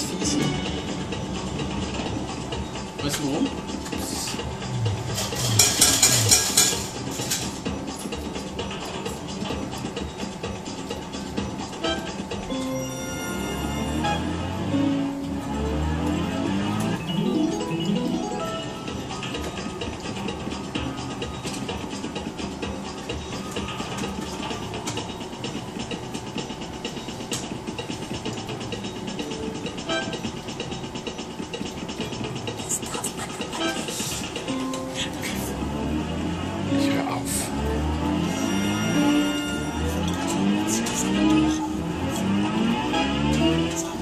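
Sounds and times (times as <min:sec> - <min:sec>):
slot machine game music: 0:00.0 - 0:08.3, 0:09.8 - 0:21.5, 0:28.9 - 0:30.9, 0:33.4 - 0:44.0.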